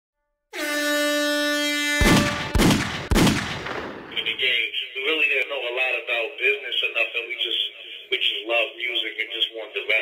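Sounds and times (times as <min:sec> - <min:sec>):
steady horn tone: 0:00.5 - 0:02.6
heavy booms: 0:02.0 - 0:04.5.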